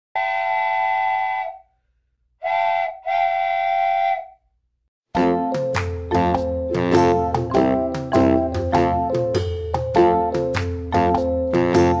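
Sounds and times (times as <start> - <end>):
whistle blasts: 0.2 - 1.7, 2.4 - 4.5.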